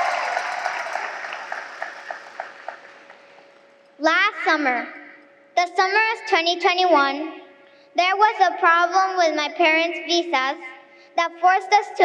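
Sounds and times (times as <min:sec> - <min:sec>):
audience applause: 0:00.0 - 0:03.5.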